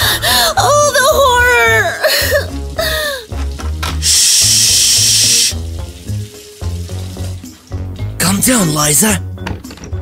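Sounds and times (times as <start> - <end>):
loud hiss: 4.0 - 5.7.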